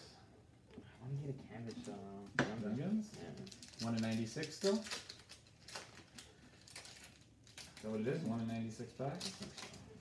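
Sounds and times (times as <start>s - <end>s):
foil wrappers crinkling: 3.1s - 10.0s.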